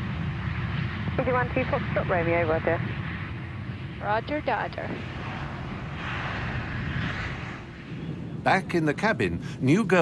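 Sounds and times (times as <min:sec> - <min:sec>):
airliner engine drone: 0:00.0 - 0:10.0.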